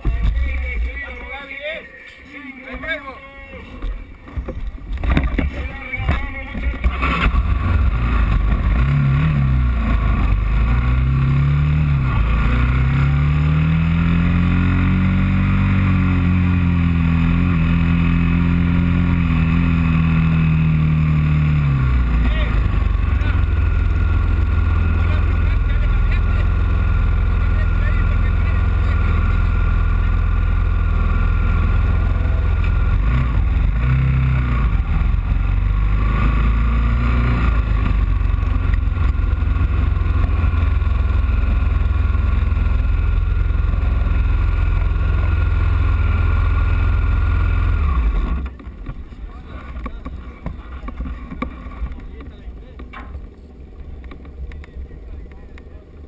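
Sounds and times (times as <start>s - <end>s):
racing motorcycle engine revving: 3.8s - 56.0s.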